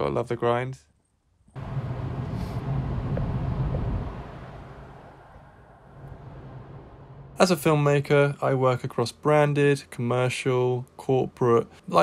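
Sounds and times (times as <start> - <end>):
car engine and road noise: 1.5 - 8.1.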